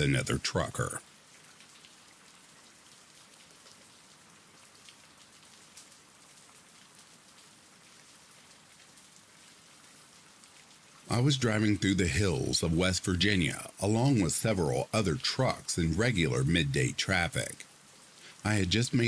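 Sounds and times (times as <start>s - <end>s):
rain falling: 0.0s - 19.0s.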